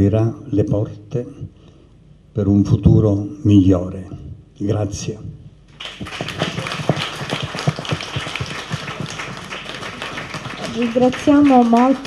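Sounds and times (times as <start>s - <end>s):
audience applauding: 5.7s - 12.0s.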